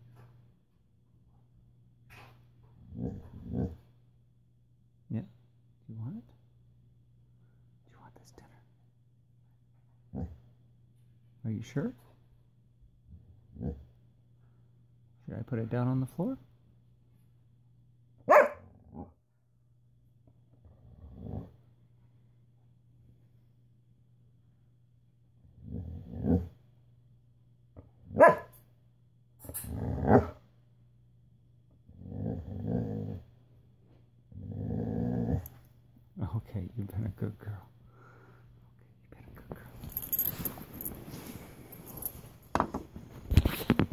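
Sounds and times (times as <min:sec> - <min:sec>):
dog vocal grumble: 0:02.8 - 0:03.9, 0:20.6 - 0:21.6, 0:29.5 - 0:30.4, 0:31.9 - 0:33.3, 0:34.3 - 0:35.6.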